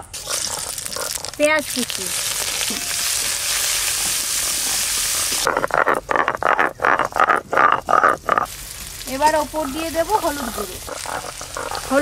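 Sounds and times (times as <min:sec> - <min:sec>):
onions sizzling in hot oil: 0:00.1 - 0:05.5, 0:08.2 - 0:12.0.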